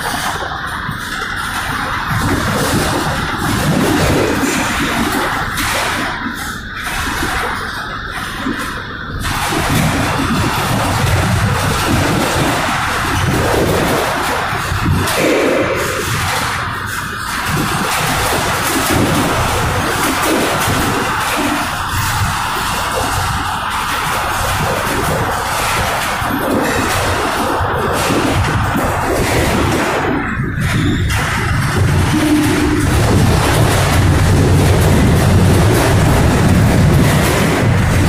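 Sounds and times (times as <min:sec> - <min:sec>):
boxcar rattling and clanking: 0:00.0 - 0:38.0
wheel and rail noise: 0:00.0 - 0:38.0.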